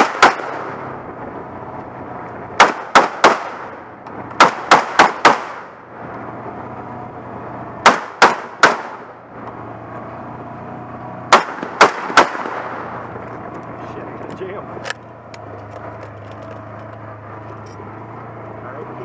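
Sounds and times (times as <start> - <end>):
rifle shots: 0.0 - 0.8, 2.6 - 3.8, 4.4 - 5.8, 7.8 - 9.1, 11.3 - 13.0
vehicle engine humming: 0.0 - 19.0.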